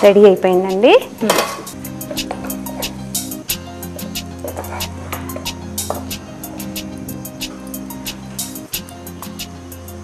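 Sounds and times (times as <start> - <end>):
wooden spatula scraping rice pot: 4.4 - 5.5.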